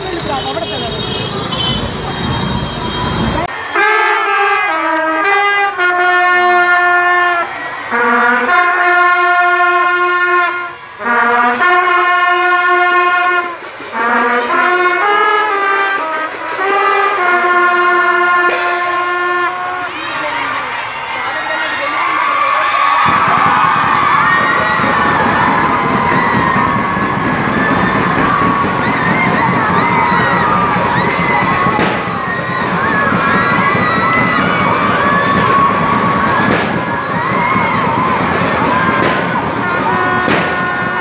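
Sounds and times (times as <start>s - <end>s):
marching band brass playing: 0.0s - 20.7s, 22.9s - 41.0s.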